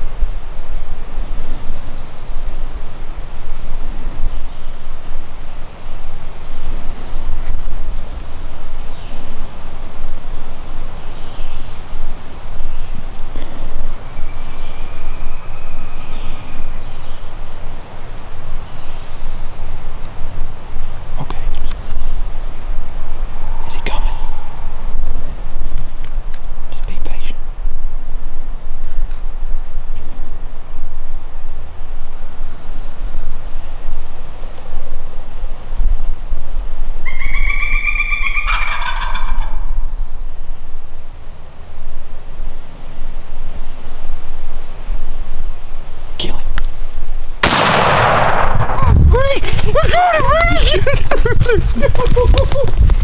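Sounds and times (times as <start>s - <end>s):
turkey gobbling: 37.0s - 39.8s
shotgun blast: 47.4s - 49.0s.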